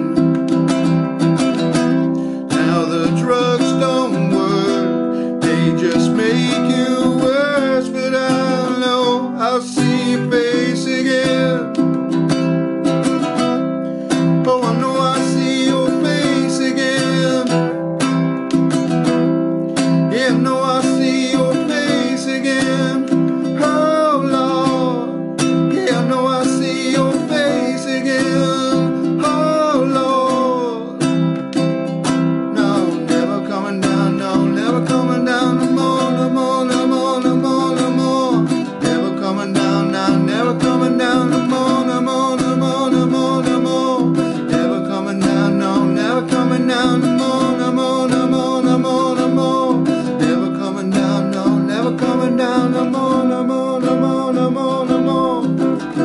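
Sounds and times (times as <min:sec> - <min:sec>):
man singing: 0:00.0 - 0:56.0
ukulele strumming: 0:00.0 - 0:56.0.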